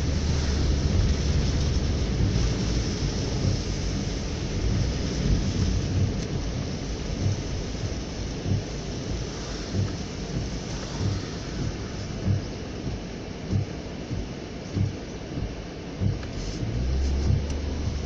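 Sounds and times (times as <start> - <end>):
rain on car: 0.0 - 18.0
soft low thumps: 0.0 - 18.0
tyres on wet road: 0.0 - 18.0.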